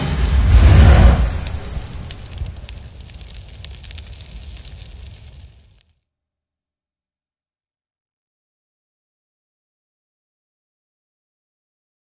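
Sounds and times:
deep boom: 0:00.0 - 0:03.6
fizzling crackle of sparks: 0:00.0 - 0:06.0.

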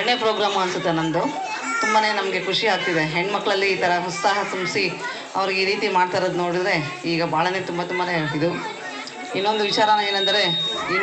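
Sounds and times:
woman talking into microphone: 0:00.0 - 0:11.0.

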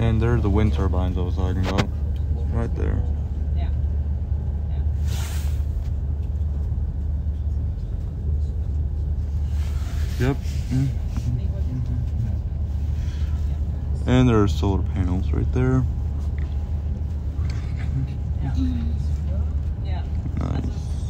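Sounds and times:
train rumbling at speed: 0:00.0 - 0:21.0
brief hiss: 0:05.0 - 0:05.8.

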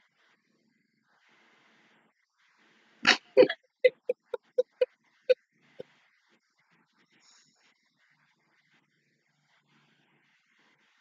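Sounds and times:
woman laughing: 0:03.1 - 0:04.8.

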